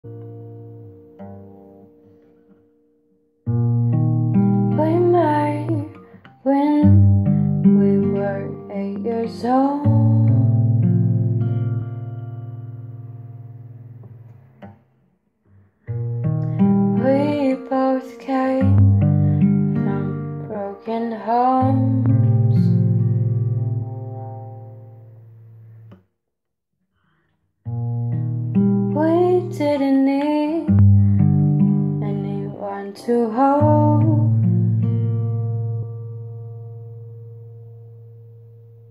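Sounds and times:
acoustic guitar chords: 0.0s - 26.0s, 27.6s - 38.9s.

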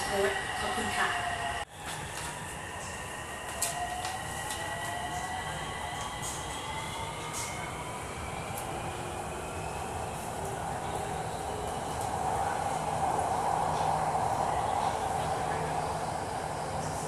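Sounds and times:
train rolling rumble: 0.0s - 17.0s.

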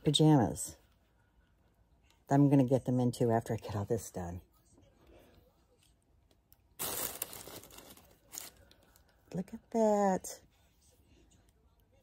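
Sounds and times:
tissue paper rustling: 6.8s - 9.0s.

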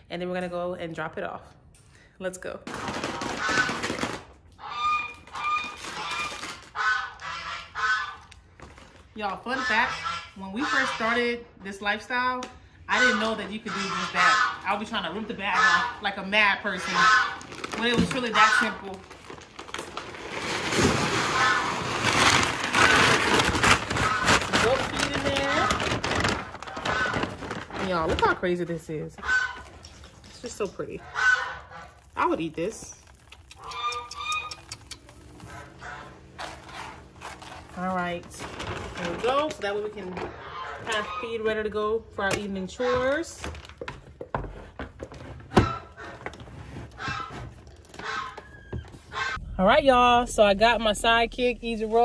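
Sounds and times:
fowl honking: 4.6s - 8.3s, 9.4s - 11.4s, 12.9s - 17.4s, 18.1s - 18.9s, 26.7s - 27.3s, 29.2s - 29.8s, 30.7s - 32.2s, 33.6s - 34.6s, 35.5s - 36.9s, 40.2s - 41.5s, 48.0s - 49.4s
feed bag rustling: 16.7s - 28.6s, 29.3s - 33.7s, 34.8s - 41.0s.

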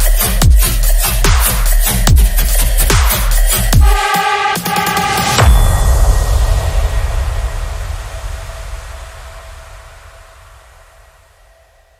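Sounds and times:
low rumble: 5.4s - 11.9s.

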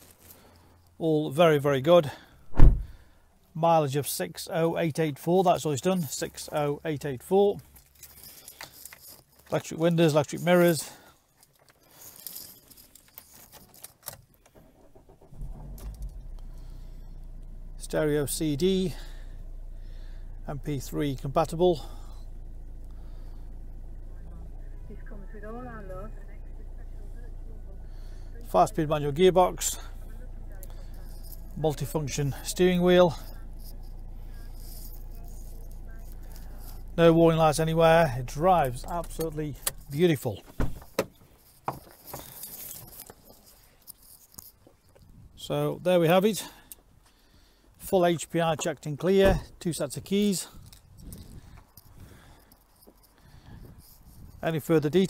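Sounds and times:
light clicks and rattles: 6.0s - 19.2s, 28.0s - 45.2s, 48.4s - 55.0s
diesel engine starting and idling: 14.4s - 41.5s
low hum inside car cabin: 14.5s - 43.7s.

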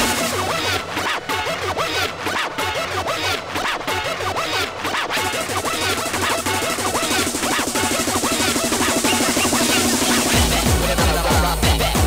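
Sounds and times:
hardcore techno mix: 0.0s - 12.0s.

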